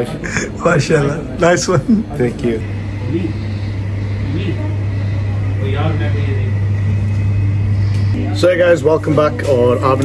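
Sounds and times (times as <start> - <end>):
faint voices talking: 0.0 - 10.0
steady low hum: 0.0 - 10.0.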